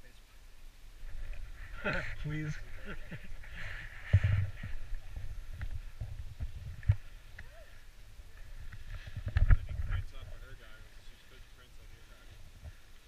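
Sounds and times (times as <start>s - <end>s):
wind rumble on microphone: 0.9s - 10.9s.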